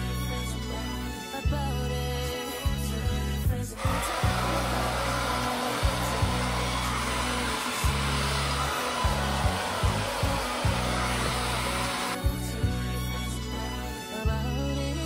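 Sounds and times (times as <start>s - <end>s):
background music with beat: 0.0s - 15.0s
hair dryer blowing: 3.8s - 12.4s.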